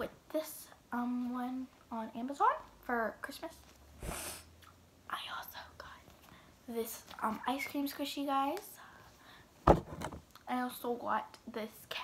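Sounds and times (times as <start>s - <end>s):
girl whispering: 5.1s - 6.1s
low thud: 9.7s - 10.2s.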